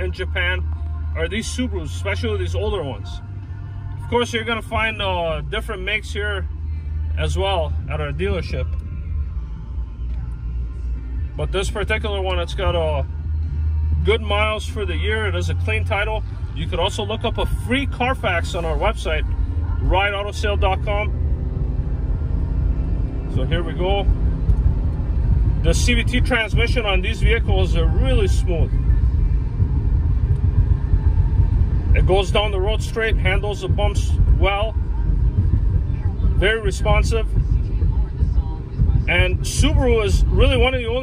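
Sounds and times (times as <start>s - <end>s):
car engine rumble: 0.0s - 41.0s.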